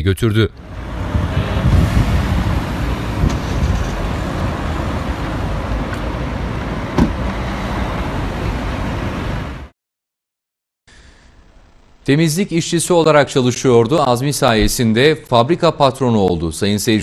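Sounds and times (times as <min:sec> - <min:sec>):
street noise: 0:00.0 - 0:09.7, 0:14.5 - 0:15.2
car engine running: 0:00.6 - 0:09.2.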